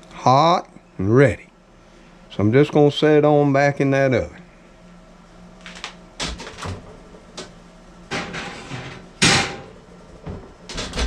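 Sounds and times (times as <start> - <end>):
oven door opening: 8.1 - 11.0.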